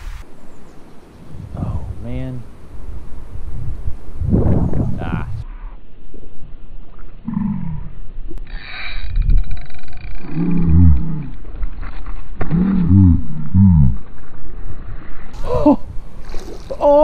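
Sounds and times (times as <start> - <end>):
man groaning excitedly: 15.4 - 15.9, 16.8 - 17.0.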